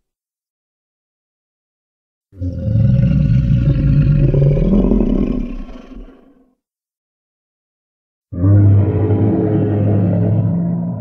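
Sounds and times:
deep loud dinosaur roar: 2.4 - 6.4, 8.3 - 11.0.

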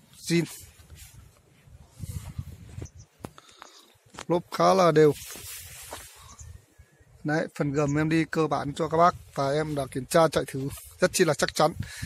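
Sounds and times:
soft hiss: 0.0 - 7.2.

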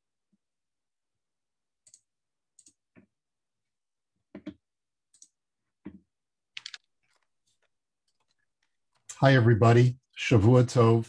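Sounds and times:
typing on computer keyboard: 1.8 - 2.8, 4.4 - 5.4, 6.6 - 7.3.

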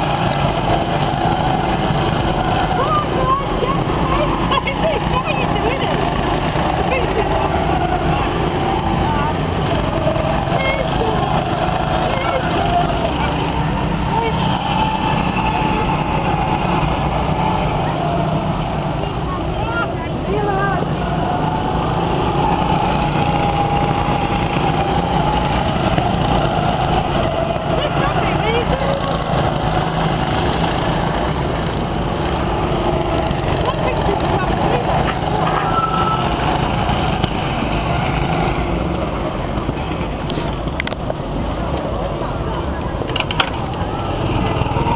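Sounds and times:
go-kart engines passing: 0.0 - 44.9.

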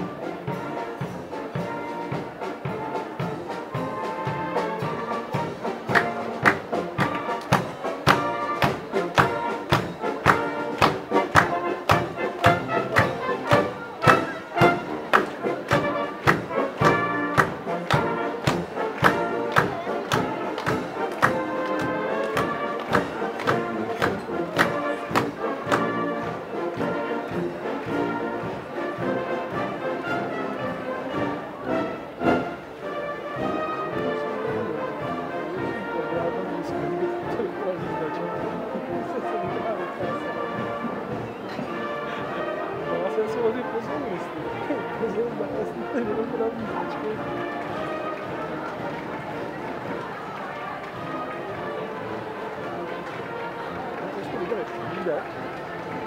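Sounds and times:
drum beating: 0.0 - 32.6, 33.3 - 56.0
marching brass band playing: 0.0 - 56.0.

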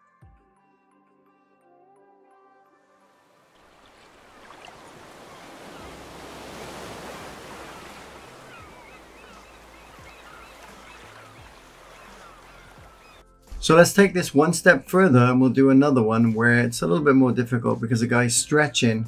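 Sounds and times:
small waves washing onto sand: 3.5 - 13.2.

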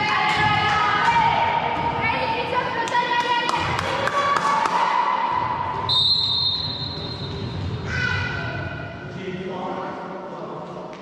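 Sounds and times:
referee's whistle: 5.9 - 7.3.

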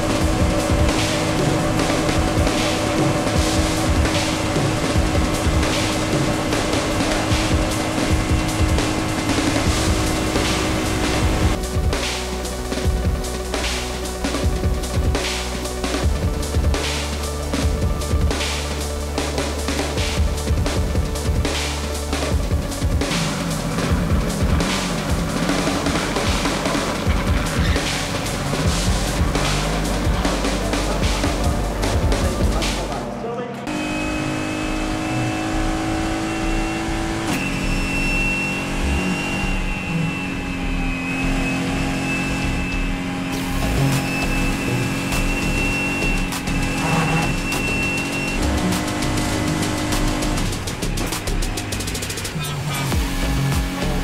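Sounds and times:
electronic music with bass beat: 0.0 - 33.5, 34.5 - 54.0
high whine: 0.0 - 54.0
race car engine at high revs: 0.0 - 54.0.

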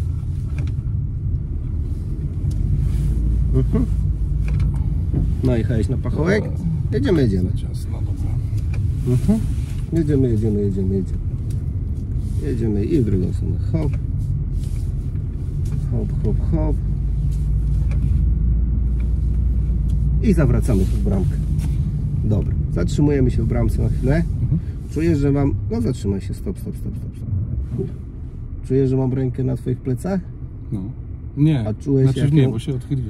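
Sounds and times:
car engine and tyres rumbling: 0.0 - 33.0.

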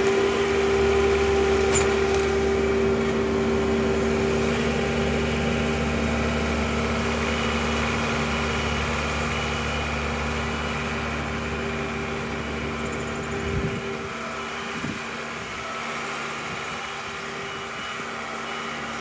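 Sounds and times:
tractor diesel engine running: 0.0 - 19.0.

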